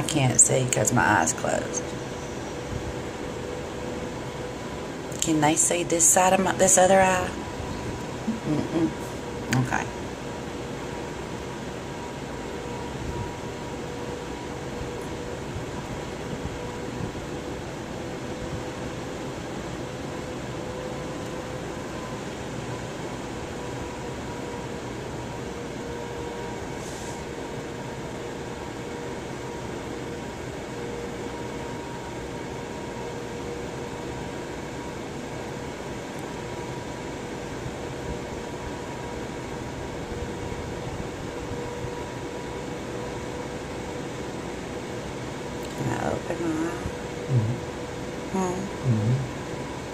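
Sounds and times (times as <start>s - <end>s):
electric fan running: 0.0s - 49.9s.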